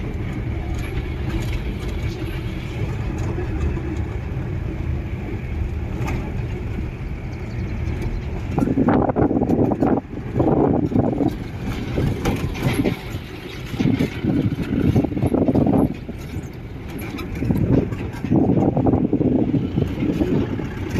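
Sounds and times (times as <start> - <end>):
vehicle engine rumbling: 0.0 - 20.9
rattles and knocks: 7.8 - 20.9.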